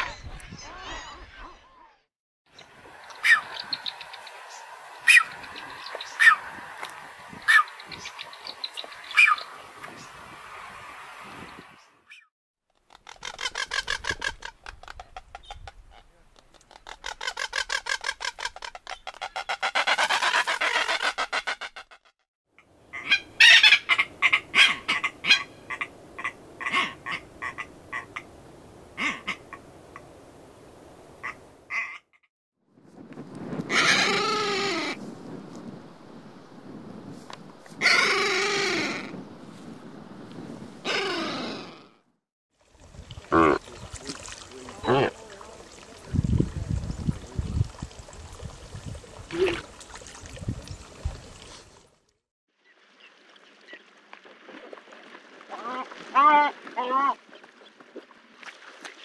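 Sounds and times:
fast rattling seabird calls: 12.8s - 16.0s, 16.6s - 22.1s.

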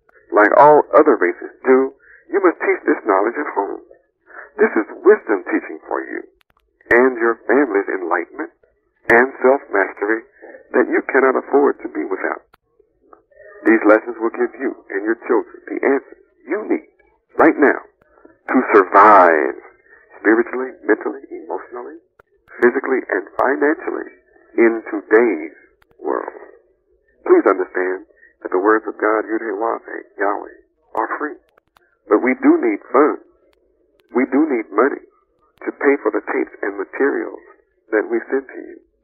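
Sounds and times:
person talking over radio: 0.3s - 8.5s, 9.1s - 12.5s, 13.3s - 16.8s, 17.4s - 26.6s, 27.2s - 33.2s, 34.1s - 35.0s, 35.6s - 38.8s.

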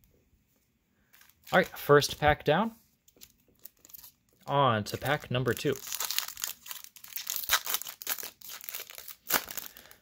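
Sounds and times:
foil wrapper tearing and crinkling: 3.6s - 4.2s, 5.0s - 10.0s.

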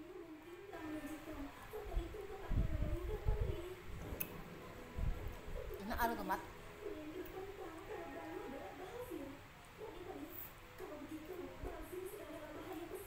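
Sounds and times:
faint high-pitched voice: 0.0s - 4.3s, 6.9s - 13.0s.

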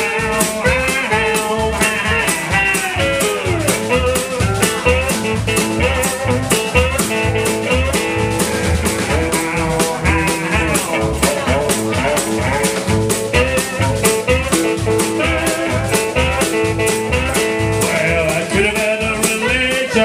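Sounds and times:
blues guitar: 0.0s - 20.0s
drum kit beat: 0.0s - 20.0s
upright double bass: 0.0s - 20.0s.

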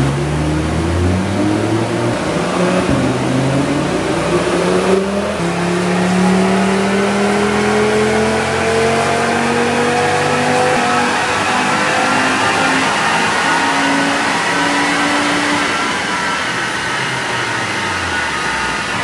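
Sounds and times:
car engine revving on a dyno: 0.0s - 19.0s.

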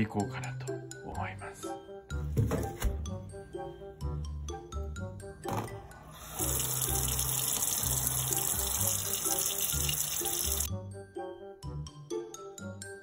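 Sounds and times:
tap water running into sink: 6.2s - 10.7s.

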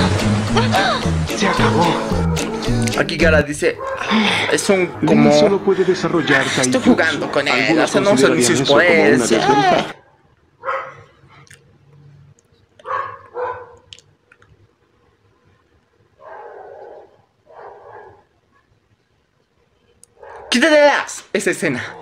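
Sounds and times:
dog barking: 3.8s - 4.2s, 10.6s - 11.1s, 12.8s - 13.9s, 16.2s - 18.4s, 20.2s - 20.6s.

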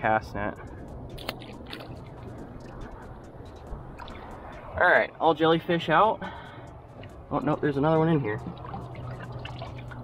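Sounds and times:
wet net crackling clicks: 1.2s - 2.0s
water dripping: 8.2s - 10.0s.

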